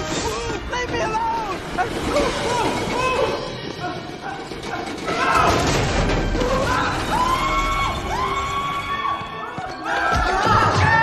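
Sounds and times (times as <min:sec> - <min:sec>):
cart wheels clattering on rails: 0:00.0 - 0:10.8.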